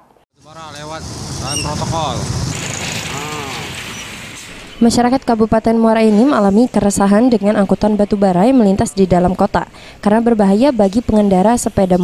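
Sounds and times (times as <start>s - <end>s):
people talking: 0.4s - 2.3s, 3.0s - 3.8s, 4.8s - 12.0s
tyre and road hiss: 0.4s - 4.8s
truck engine rumbling: 0.4s - 5.1s.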